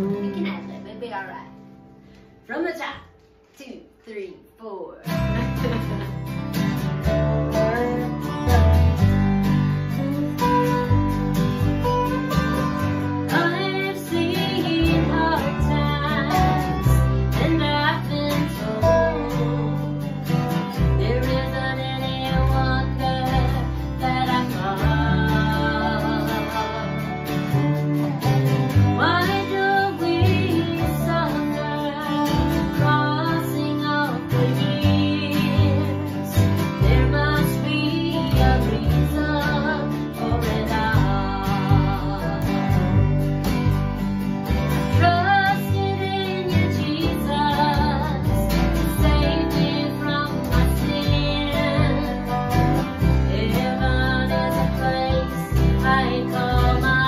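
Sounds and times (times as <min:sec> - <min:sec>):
upright bass: 0:00.0 - 0:01.9, 0:04.7 - 0:57.0
acoustic guitar strumming: 0:00.0 - 0:57.0
resonator guitar sliding: 0:05.1 - 0:57.0.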